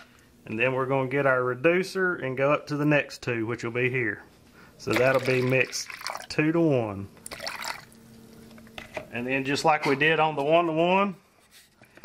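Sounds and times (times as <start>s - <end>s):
faint steady hum: 0.0s - 12.0s
liquid dripping into plastic cup: 7.2s - 8.0s.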